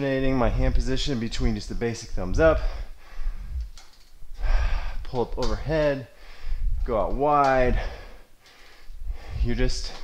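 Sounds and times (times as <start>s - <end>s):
man breathing: 2.6s - 3.7s, 4.3s - 5.1s, 6.1s - 6.8s, 7.6s - 10.0s.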